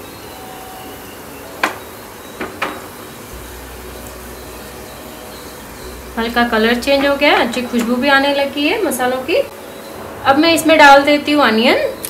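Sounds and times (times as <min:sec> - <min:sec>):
spices sizzling in hot oil: 0:00.0 - 0:12.0.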